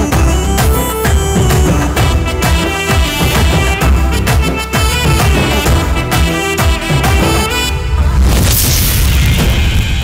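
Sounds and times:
soundtrack music: 0.0 - 10.0
dense rushing noise: 7.7 - 10.0
deep cinematic boom: 7.8 - 10.0.

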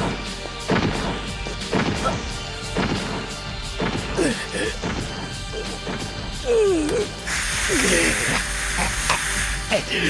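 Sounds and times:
harsh hissing rasping rush: 0.4 - 10.0
man groaning: 4.2 - 4.8, 6.4 - 7.1, 7.7 - 9.0, 9.7 - 10.0.

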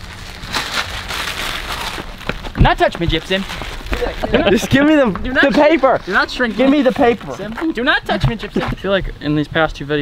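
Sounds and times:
paper rustling and crackling: 0.0 - 8.8.

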